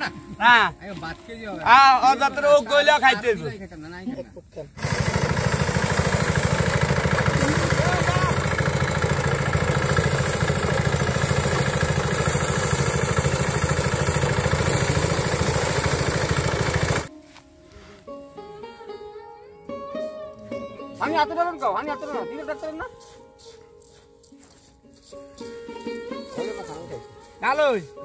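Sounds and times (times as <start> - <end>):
men talking: 0.0 - 4.8, 7.3 - 8.7, 20.4 - 23.0, 26.1 - 28.0
motorized thresher pulsing: 4.8 - 17.1.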